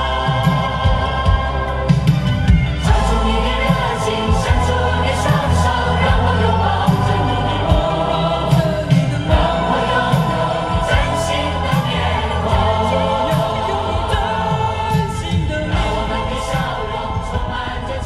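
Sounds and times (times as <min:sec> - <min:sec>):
pop song through car speakers: 0:00.0 - 0:18.0.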